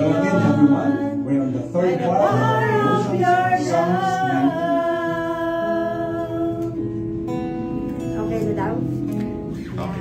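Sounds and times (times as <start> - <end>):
women singing: 0.0 - 6.9
acoustic guitar: 0.0 - 10.0.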